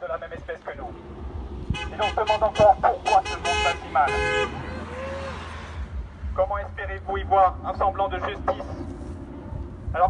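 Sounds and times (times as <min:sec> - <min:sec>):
man speaking: 0:01.9 - 0:04.4, 0:06.4 - 0:08.9.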